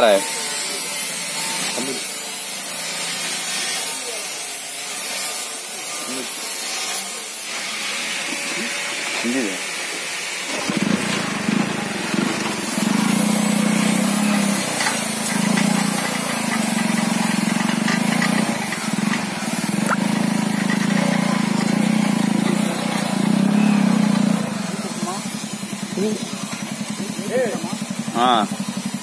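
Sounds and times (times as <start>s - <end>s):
small motorcycle engine running: 0.0s - 6.5s, 7.1s - 29.0s.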